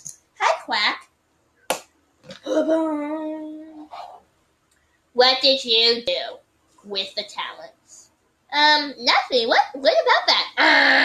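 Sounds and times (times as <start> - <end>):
short vocal sounds: 2.3 - 4.1.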